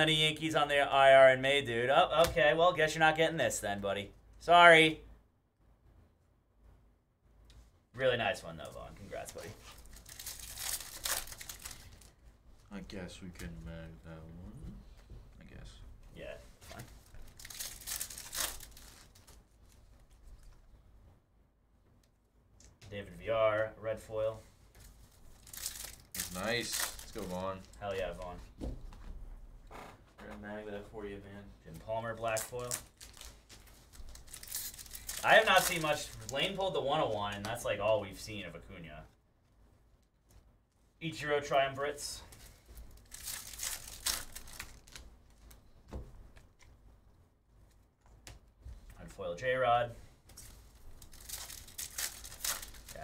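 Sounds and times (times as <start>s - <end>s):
foil wrapper crinkling and tearing: 9.2s - 12.1s, 17.0s - 19.4s, 25.3s - 27.8s, 32.2s - 36.6s, 42.3s - 45.1s, 50.4s - 53.0s.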